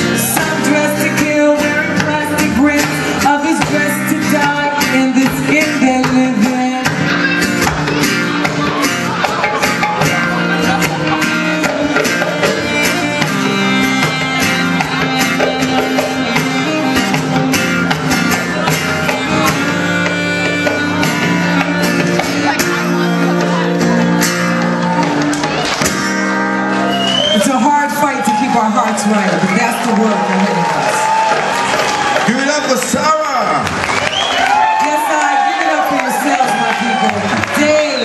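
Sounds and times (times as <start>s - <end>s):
person singing: 0.0s - 24.2s
drum beat: 0.0s - 26.3s, 27.5s - 34.1s
sustained bass notes: 0.0s - 30.8s
guitar: 0.0s - 38.0s.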